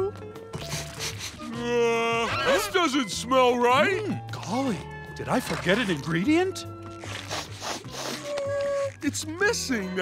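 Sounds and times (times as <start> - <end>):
soft background music: 0.0 - 10.0
cartoon character sniffing: 0.6 - 1.6, 7.1 - 8.4.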